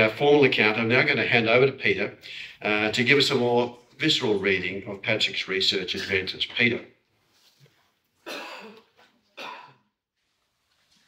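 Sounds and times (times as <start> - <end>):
man coughing: 5.9 - 6.4, 8.2 - 9.9.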